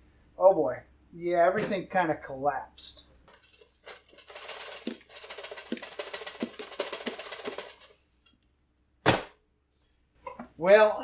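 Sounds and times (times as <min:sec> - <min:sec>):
crumbs rattling out of toaster: 0:03.3 - 0:08.0.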